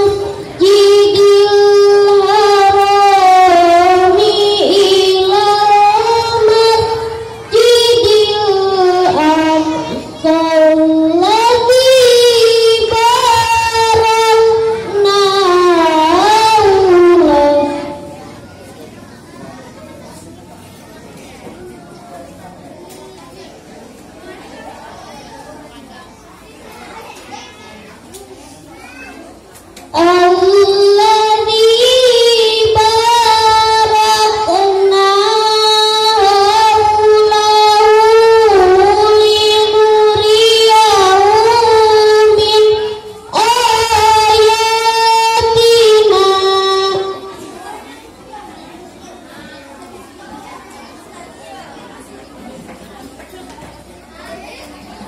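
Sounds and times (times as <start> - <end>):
background chatter of voices: 0.0 - 55.0.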